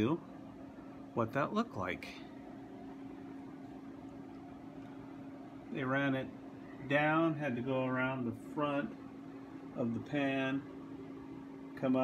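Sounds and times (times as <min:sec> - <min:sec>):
machine or fan hum: 0:00.0 - 0:12.0.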